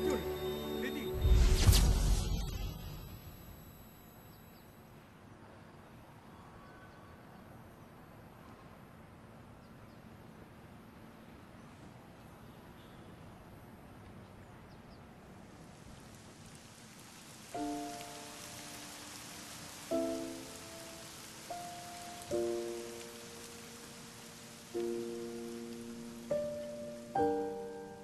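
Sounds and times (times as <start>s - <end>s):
soft piano chords: 0.0s - 1.2s, 17.4s - 28.0s
rain hiss: 0.0s - 4.3s, 15.2s - 28.0s.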